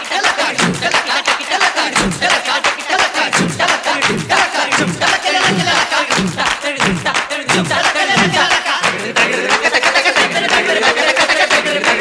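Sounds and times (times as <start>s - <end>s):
fast drum beat: 0.0s - 12.0s
group of voices chanting: 0.0s - 12.0s.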